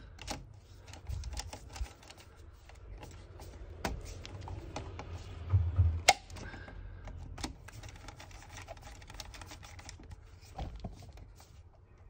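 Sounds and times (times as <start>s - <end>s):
dull low thump: 5.4s - 6.2s.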